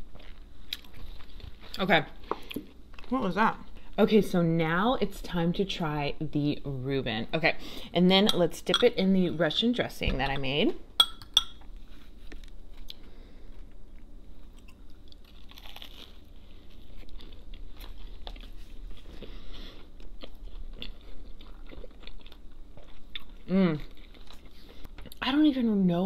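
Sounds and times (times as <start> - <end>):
wet chewing with mouth clicks: 16.6 - 25.2.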